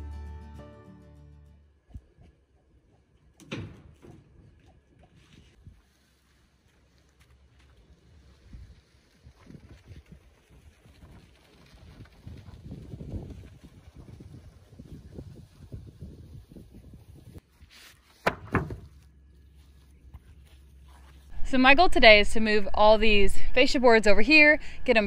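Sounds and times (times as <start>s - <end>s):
wind buffeting microphone: 8.4s - 17.4s.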